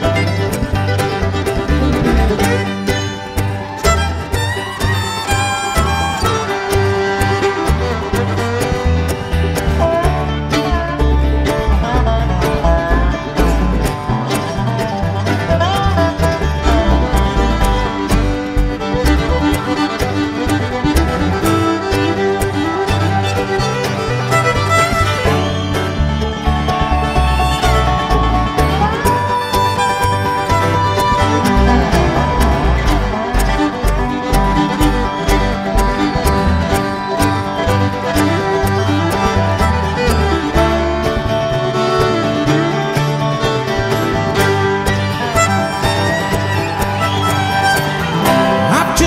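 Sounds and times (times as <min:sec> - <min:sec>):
bass line: 0:00.0 - 0:49.0
bowed fiddle: 0:00.0 - 0:49.0
dobro: 0:00.0 - 0:49.0.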